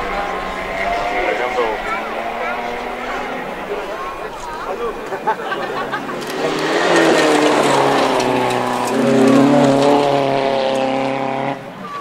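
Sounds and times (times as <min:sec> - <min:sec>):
rally car engine running hard: 0:00.0 - 0:12.0.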